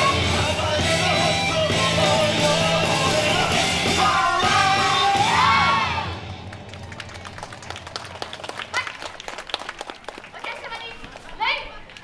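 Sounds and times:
audience clapping: 6.2 - 12.0.

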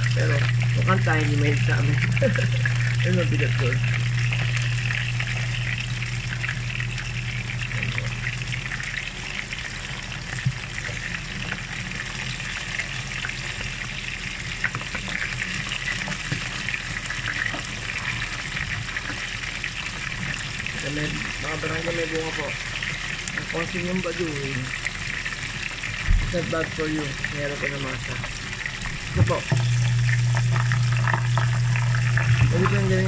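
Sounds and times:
low hum: 0.0 - 9.2, 28.0 - 33.0
meat frying in oil: 0.0 - 33.0.

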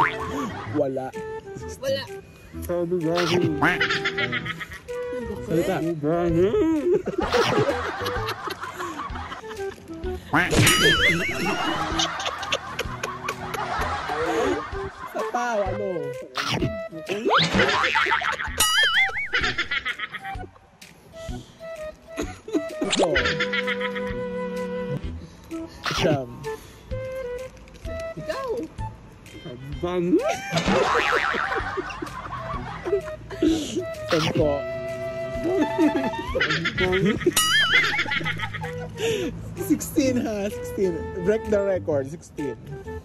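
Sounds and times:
background music: 0.0 - 43.0
duck-like quacking: 3.2 - 4.1
squawks: 16.4 - 16.8.

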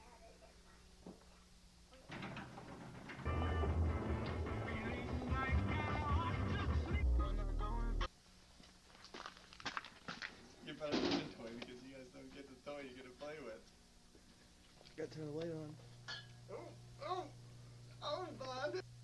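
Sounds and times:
distorted voices: 3.2 - 8.1
heavy low rumble: 6.6 - 8.1.

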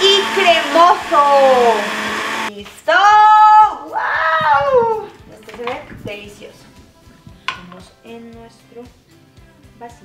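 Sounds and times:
blender running: 0.0 - 2.5.

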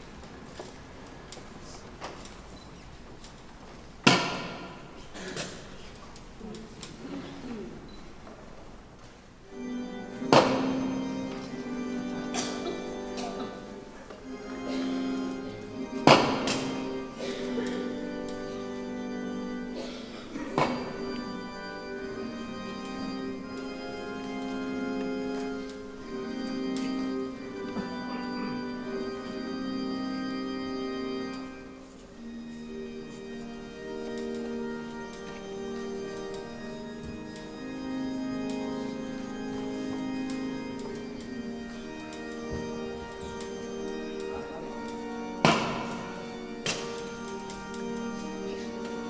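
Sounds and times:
loud knock in reverberant church: 4.0 - 5.6, 10.3 - 10.8, 16.0 - 16.7, 45.4 - 46.0
organ chords: 9.4 - 49.0.

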